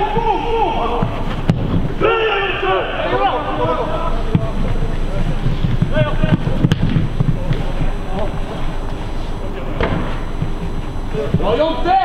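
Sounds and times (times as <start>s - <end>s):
low rumbling microphone noise: 0.0s - 12.0s.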